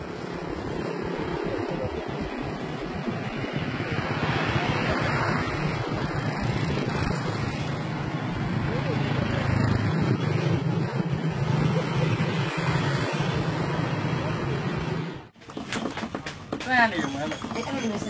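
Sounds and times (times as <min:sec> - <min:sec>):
motorbike traffic: 0:00.0 - 0:18.0.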